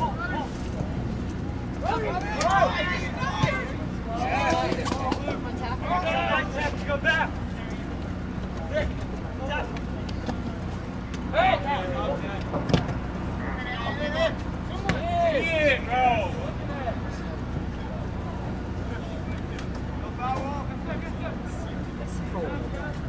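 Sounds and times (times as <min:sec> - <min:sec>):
players and spectators calling out: 0:01.5 - 0:12.5, 0:13.1 - 0:23.0.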